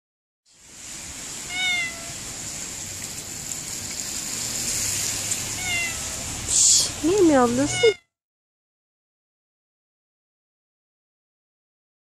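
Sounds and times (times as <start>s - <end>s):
rain hissing: 0.5s - 8.0s
cat meowing: 1.4s - 2.2s, 5.5s - 6.3s, 7.5s - 8.1s.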